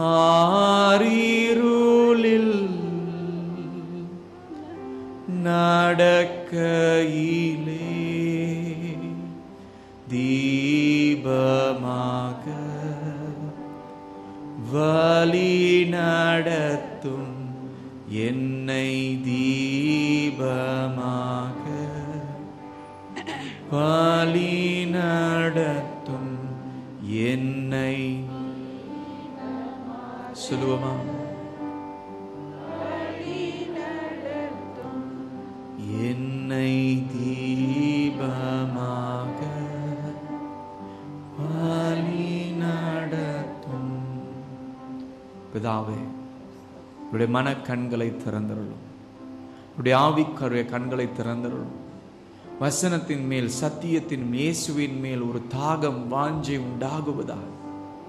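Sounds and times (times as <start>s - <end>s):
person singing chant-like chorus: 0.0s - 13.7s, 14.7s - 22.6s, 23.2s - 44.7s.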